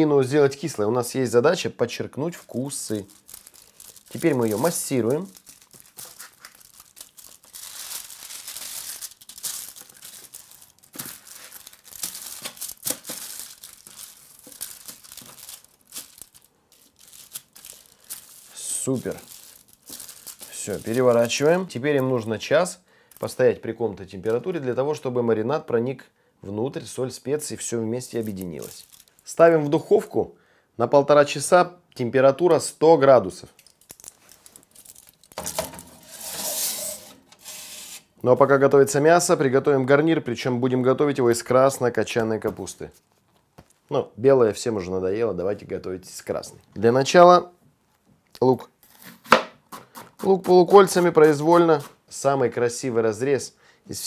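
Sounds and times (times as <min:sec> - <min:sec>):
aluminium foil crinkling: 0:02.4 - 0:22.2, 0:28.0 - 0:29.3, 0:33.6 - 0:38.0.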